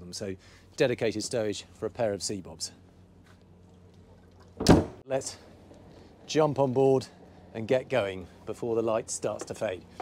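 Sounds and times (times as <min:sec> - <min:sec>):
locker door thudding shut: 0:04.6 - 0:05.0.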